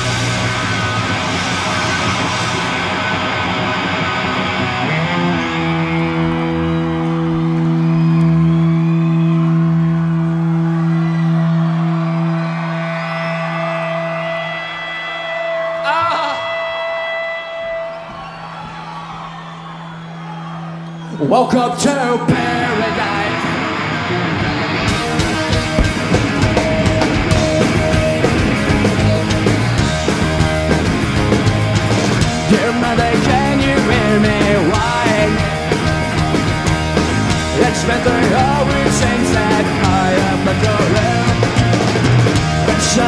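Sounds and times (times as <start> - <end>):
punk rock band playing: 0.0 - 19.7, 21.5 - 43.0
crowd cheering: 0.0 - 43.0
person yelling: 15.8 - 16.7.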